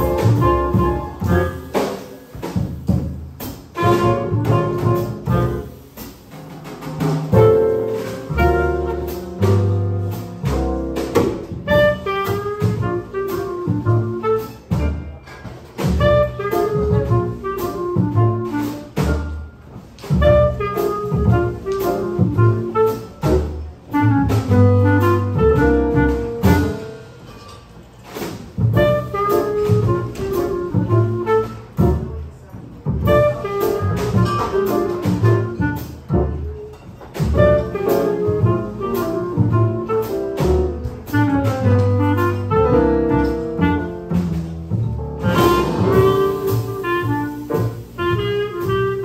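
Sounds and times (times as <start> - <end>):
clarinet melody: 0.0 - 1.9, 3.7 - 5.8, 7.3 - 15.2, 15.8 - 27.2, 28.7 - 32.4, 33.0 - 36.6, 37.2 - 49.0
small jazz group playing swing: 0.0 - 49.0.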